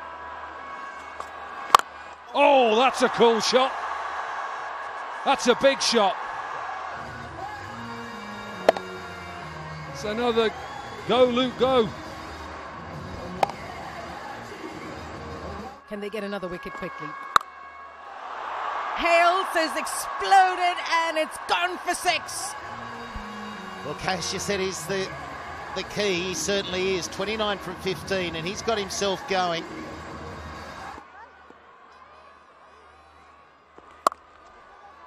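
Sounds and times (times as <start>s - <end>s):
stadium crowd noise: 0.0s - 35.0s.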